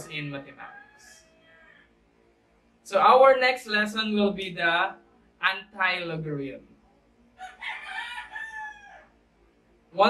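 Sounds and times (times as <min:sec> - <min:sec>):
rooster crowing: 0:00.0 - 0:01.9, 0:07.4 - 0:09.2.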